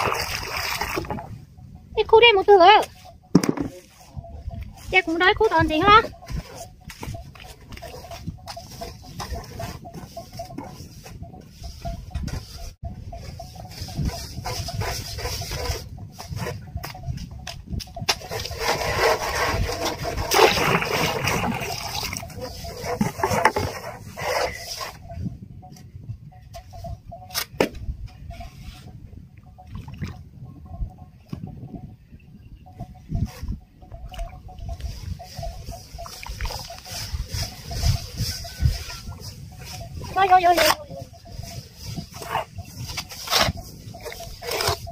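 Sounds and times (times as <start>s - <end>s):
shovel scraping wet cement: 18.1s - 25.0s, 42.0s - 44.9s.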